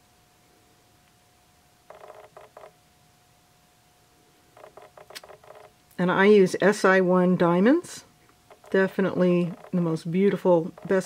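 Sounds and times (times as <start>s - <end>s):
faint steady hum: 0.0s - 11.0s
fingers turning a ring: 1.9s - 2.7s, 4.6s - 5.7s, 8.5s - 8.8s, 9.5s - 9.8s, 10.7s - 11.0s.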